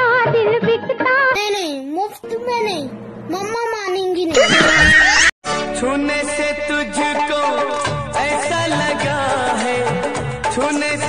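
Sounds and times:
high-pitched comic sound effect: 0:04.3 - 0:05.3.

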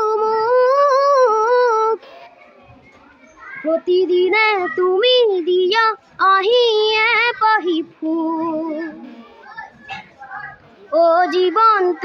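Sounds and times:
young boy singing unaccompanied: 0:00.0 - 0:02.0, 0:03.6 - 0:09.1, 0:10.2 - 0:12.0.

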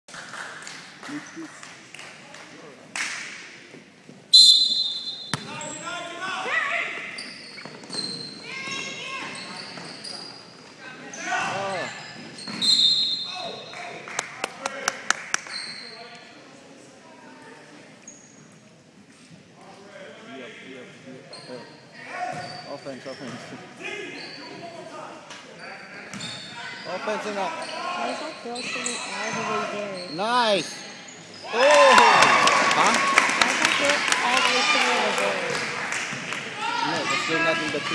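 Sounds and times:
voices in a gym: 0:00.3 - 0:37.9
referee's whistle blast: 0:04.4 - 0:05.5
sneakers squeaking: 0:04.4 - 0:06.1, 0:06.9 - 0:13.7, 0:15.4 - 0:16.3, 0:18.0 - 0:18.6, 0:21.3 - 0:24.7, 0:25.6 - 0:31.7.

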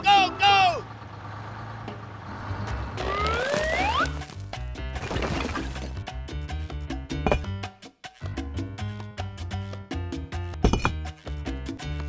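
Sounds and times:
low engine-like hum: 0:00.3 - 0:04.0.

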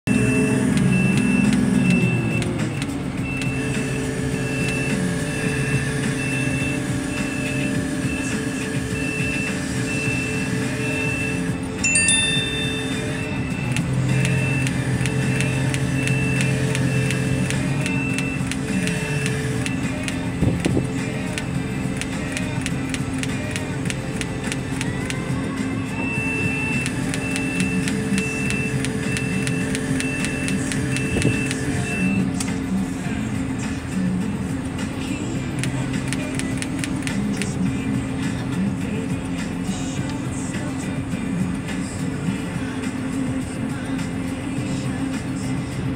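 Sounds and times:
high warning beeps: 0:00.1 - 0:20.0, 0:25.9 - 0:32.3
heavy machinery droning: 0:00.1 - 0:45.9.

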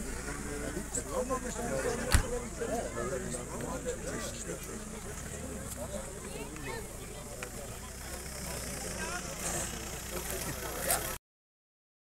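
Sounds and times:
crowd chatting outdoors: 0:00.0 - 0:11.2.

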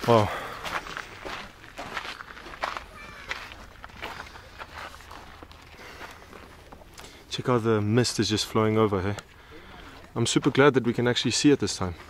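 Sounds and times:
footsteps crunching on cinder path: 0:00.0 - 0:12.0.

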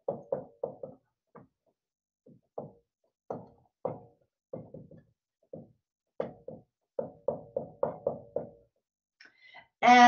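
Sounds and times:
marker tapping on whiteboard: 0:00.0 - 0:08.8.

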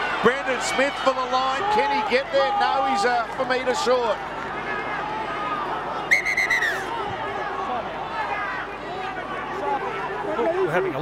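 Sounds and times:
stadium crowd murmuring: 0:00.0 - 0:11.0
sharp whistle blast: 0:06.1 - 0:06.9.

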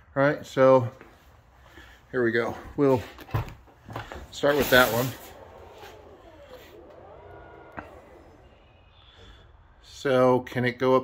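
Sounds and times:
door motors whining: 0:03.9 - 0:10.0.

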